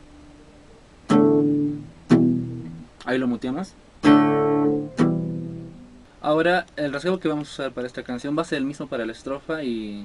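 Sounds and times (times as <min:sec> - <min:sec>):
acoustic guitar chords strummed: 0:01.1 - 0:02.9, 0:04.0 - 0:06.1.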